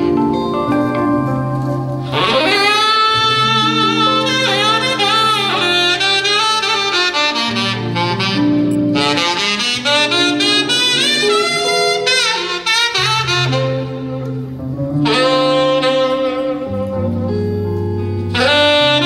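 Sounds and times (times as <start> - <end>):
low band accompaniment: 0.0 - 19.0
tenor saxophone gospel melody: 0.0 - 19.0.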